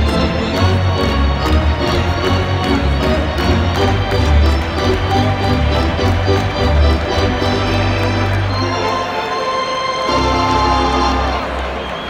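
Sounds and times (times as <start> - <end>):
organ playing a tune: 0.0 - 12.0.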